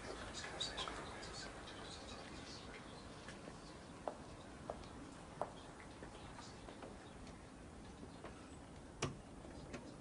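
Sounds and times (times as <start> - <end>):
faint irregular ticks and clicks: 0.0 - 10.0.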